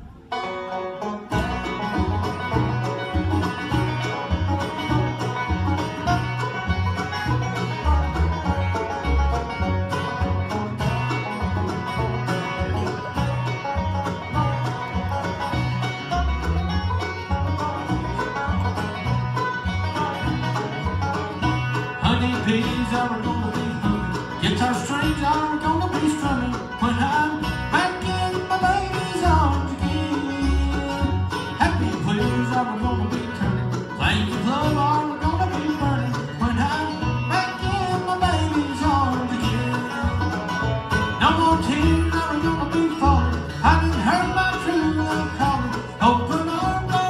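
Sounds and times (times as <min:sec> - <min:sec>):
acoustic guitar: 0:00.0 - 0:47.0
banjo: 0:00.0 - 0:47.0
upright bass: 0:00.0 - 0:47.0.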